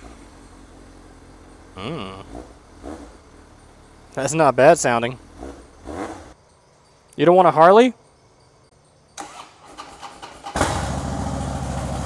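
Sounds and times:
motorcycle engine idling: 0.0s - 6.4s, 8.8s - 12.0s
faint talking: 1.8s - 2.3s.

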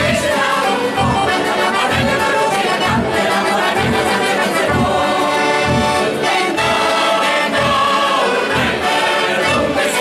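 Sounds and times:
accordions: 0.0s - 10.0s
mixed choir singing folk song: 0.0s - 10.0s.

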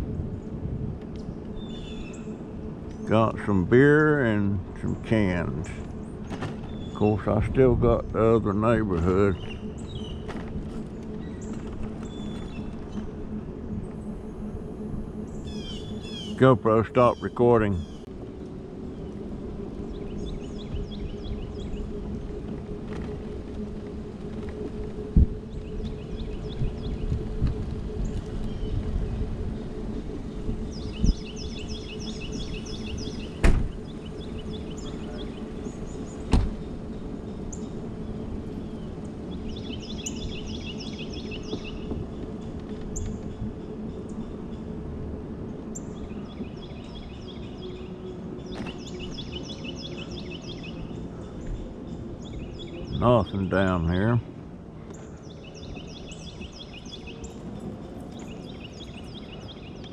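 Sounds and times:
birds chirping: 0.2s - 59.9s
scooter motor humming: 5.1s - 59.9s.

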